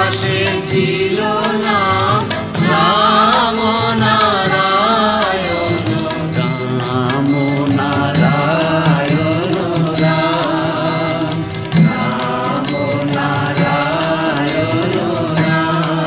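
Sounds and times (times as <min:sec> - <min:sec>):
devotional music: 0:00.0 - 0:16.0.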